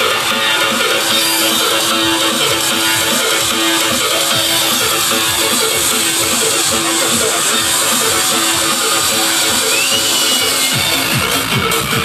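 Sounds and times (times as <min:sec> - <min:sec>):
electronic dance music: 0:00.0 - 0:12.0
heavy kick drum beat: 0:00.0 - 0:12.0.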